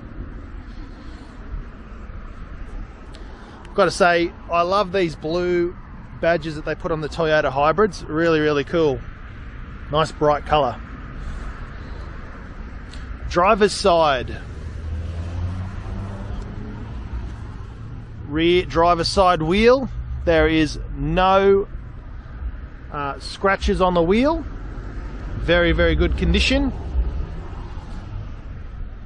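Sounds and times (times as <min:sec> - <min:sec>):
low outdoor rumble: 0:00.0 - 0:29.0
fluttering low rumble: 0:24.4 - 0:29.0.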